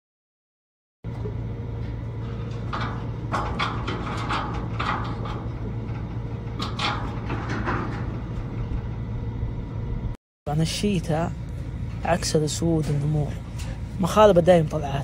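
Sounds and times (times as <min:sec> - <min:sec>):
steady low hum: 0:01.1 - 0:15.0.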